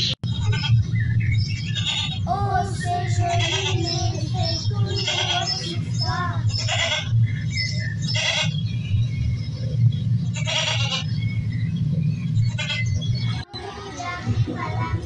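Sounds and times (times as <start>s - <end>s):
steady low hum: 0.0s - 15.0s
goat bleating: 0.3s - 0.8s, 1.6s - 2.2s, 3.2s - 4.0s, 4.8s - 5.7s, 6.5s - 7.1s, 8.1s - 8.6s, 10.4s - 11.1s, 12.5s - 13.0s.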